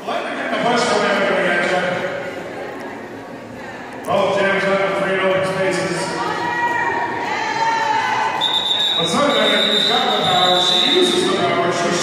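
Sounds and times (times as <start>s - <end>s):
high-pitched whistle tone: 8.4s - 11.3s.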